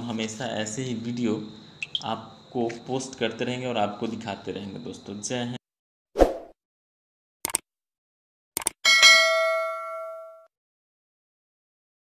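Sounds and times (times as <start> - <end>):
notification bell ding: 8.9 - 10.5.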